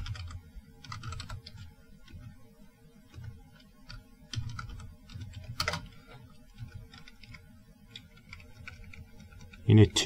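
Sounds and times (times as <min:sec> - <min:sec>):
computer keyboard typing: 0:00.0 - 0:02.4, 0:03.1 - 0:09.7.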